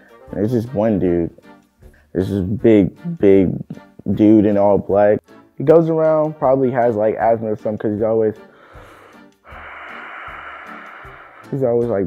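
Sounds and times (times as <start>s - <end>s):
rasping mechanical breathing: 8.5s - 11.7s.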